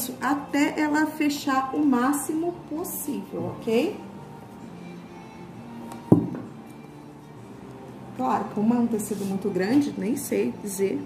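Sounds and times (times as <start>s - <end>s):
quiet background music: 0.0s - 11.0s
box knocking on table: 6.1s - 6.5s.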